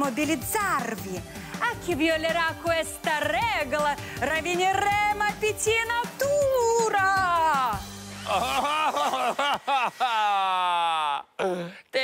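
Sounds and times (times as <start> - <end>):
man laughing: 8.2 - 11.4.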